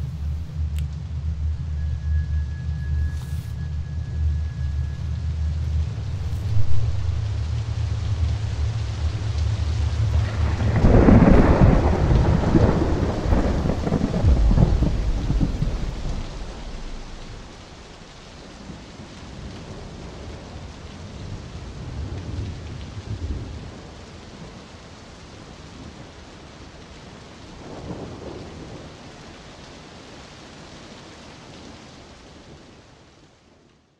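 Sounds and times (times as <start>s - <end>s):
low steady hum: 0.0s - 18.6s
rolling thunder: 0.0s - 24.6s
steady rain: 0.0s - 33.9s.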